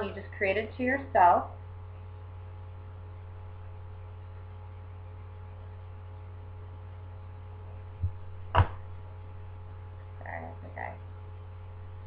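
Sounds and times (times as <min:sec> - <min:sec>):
steady low hum: 0:00.0 - 0:12.0
sharp knocks: 0:08.0 - 0:08.9
person making short low vocal sounds: 0:10.2 - 0:11.0.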